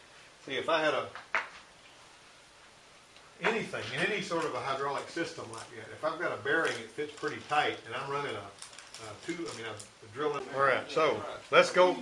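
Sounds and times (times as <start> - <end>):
man speaking: 3.4 - 12.0.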